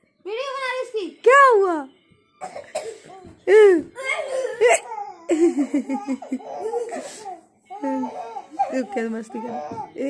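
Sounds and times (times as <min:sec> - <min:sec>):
child and adult laughing: 0:04.2 - 0:07.2.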